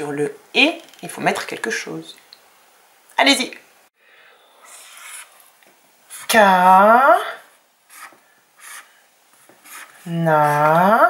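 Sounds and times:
marker rubbing on whiteboard: 0:04.7 - 0:05.3, 0:06.1 - 0:06.3, 0:07.9 - 0:10.9.

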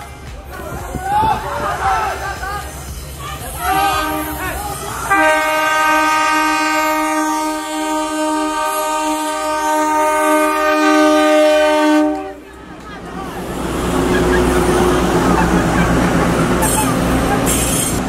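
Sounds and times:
people's voices: 0:00.0 - 0:07.2, 0:09.2 - 0:18.0
train horn blast: 0:03.6 - 0:12.4.

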